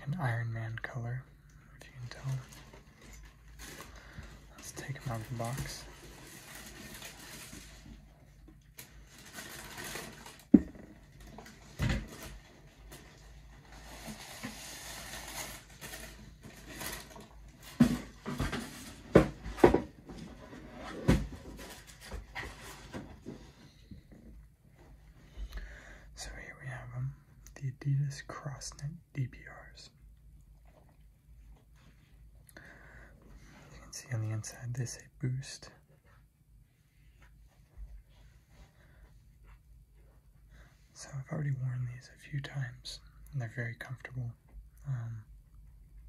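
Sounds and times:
tissue paper rustling: 0:02.1 - 0:19.0.

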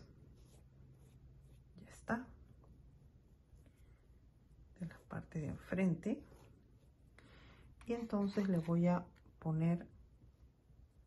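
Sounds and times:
paintbrush scratching on fabric: 0:00.0 - 0:02.1
woman speaking: 0:01.8 - 0:02.4, 0:04.7 - 0:06.4, 0:07.8 - 0:10.0.

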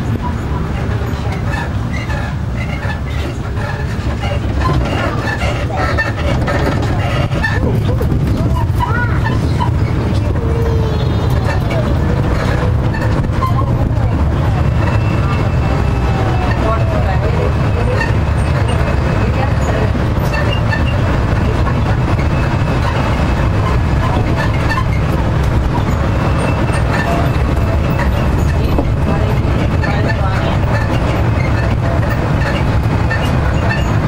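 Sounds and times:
wind and road noise rumble: 0:00.0 - 0:34.0.

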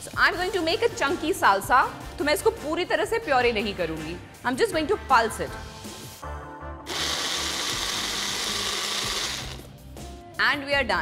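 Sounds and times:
blender motor pulsing: 0:06.9 - 0:09.7.

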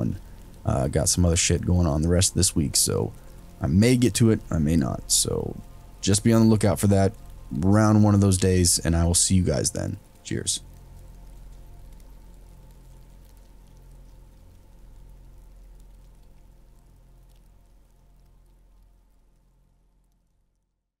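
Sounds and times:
steady rain: 0:00.0 - 0:20.6
raindrop ticks: 0:00.0 - 0:20.8
low hum: 0:00.0 - 0:20.9.

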